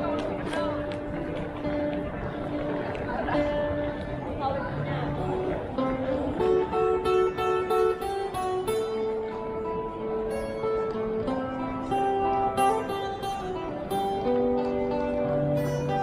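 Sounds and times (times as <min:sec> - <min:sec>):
acoustic guitar picked notes: 0:00.0 - 0:16.0.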